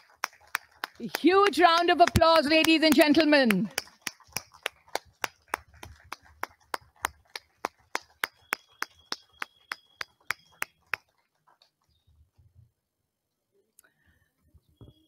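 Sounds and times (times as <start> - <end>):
hands clapping: 0.0 - 11.9.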